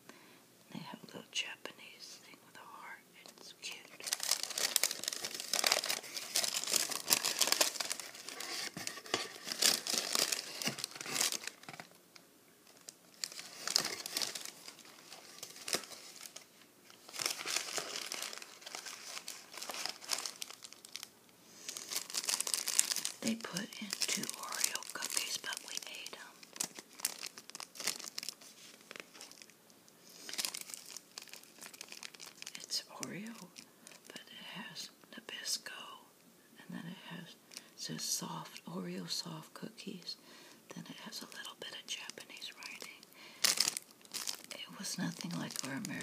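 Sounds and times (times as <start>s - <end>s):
paper and wrappers crinkling: 3.2s - 12.0s, 12.6s - 34.2s, 41.0s - 46.0s.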